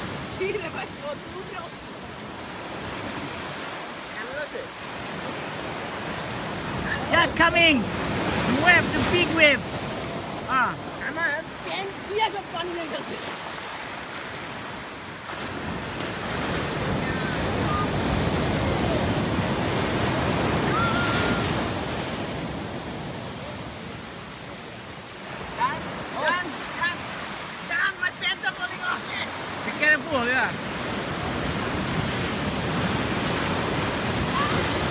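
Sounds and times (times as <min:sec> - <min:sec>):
ocean surf on rocks: 0:00.0 - 0:34.9
voices calling out: 0:16.0 - 0:30.7, 0:33.9 - 0:34.9.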